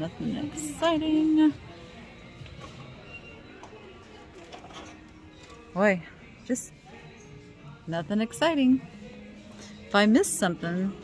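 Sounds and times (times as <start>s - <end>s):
faint background music: 0.0s - 11.0s
shop room noise: 0.0s - 11.0s.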